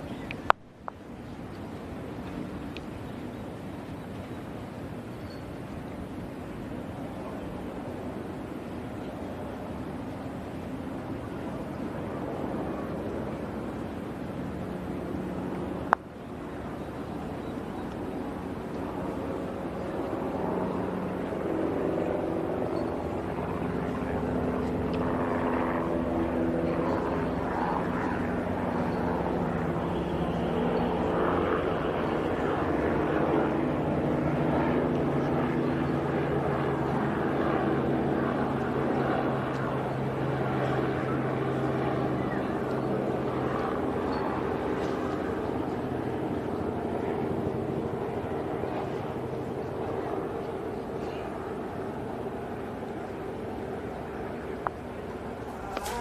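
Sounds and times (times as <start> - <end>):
aircraft engine drone: 0.0 - 56.0.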